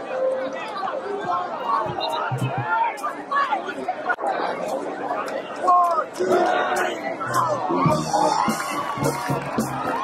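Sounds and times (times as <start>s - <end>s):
crowd talking and shouting: 0.0s - 10.0s
loud shout: 5.6s - 10.0s.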